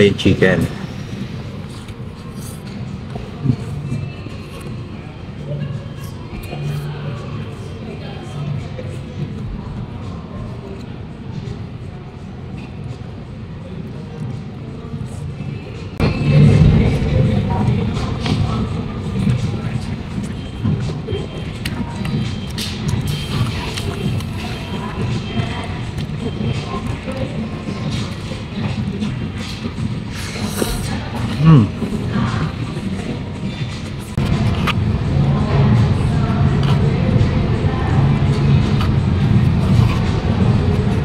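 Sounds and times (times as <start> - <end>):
people talking: 2.4 - 41.0.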